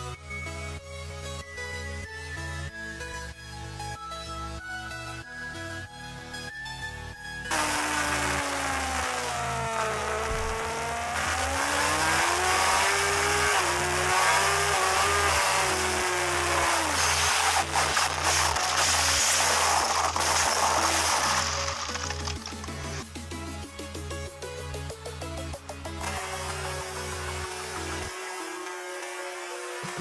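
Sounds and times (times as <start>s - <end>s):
motorcycle scraping and clattering: 7.5s - 23.0s
racing motorcycle engine: 7.5s - 23.6s, 25.7s - 30.0s.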